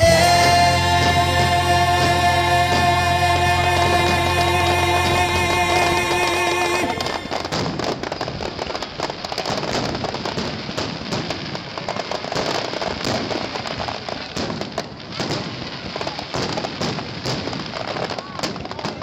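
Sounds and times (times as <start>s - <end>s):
fireworks bangs and crackles: 6.8s - 19.0s.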